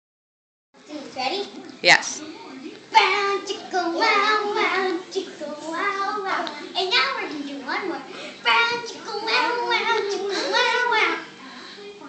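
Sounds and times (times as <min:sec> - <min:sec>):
child singing: 0:02.9 - 0:11.3.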